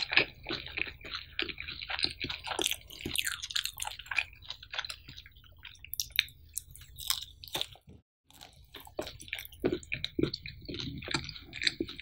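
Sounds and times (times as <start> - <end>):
person chewing food: 0.0 - 12.0.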